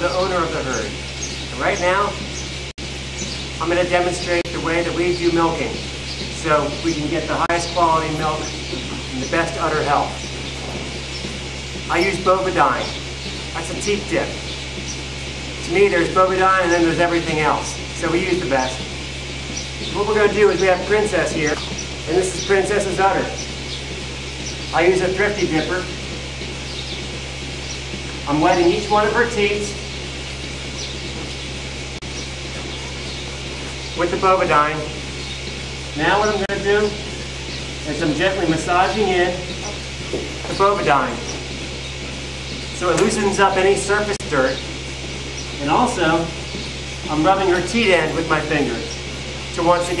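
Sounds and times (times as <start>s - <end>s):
low machine hum: 0.0s - 50.0s.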